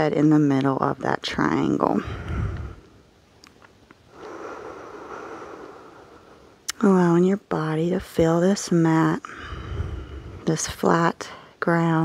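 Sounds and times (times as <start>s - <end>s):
woman breathing out: 2.0s - 3.0s, 4.1s - 6.6s, 9.2s - 10.5s.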